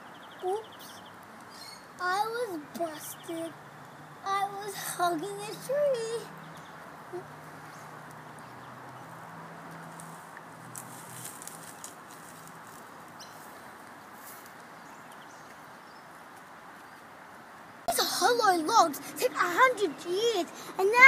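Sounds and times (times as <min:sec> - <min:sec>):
light ticks: 0:08.0 - 0:08.2.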